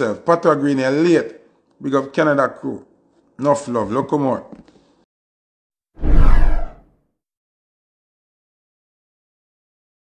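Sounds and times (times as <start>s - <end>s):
whoosh with deep rumble: 6.0s - 6.8s.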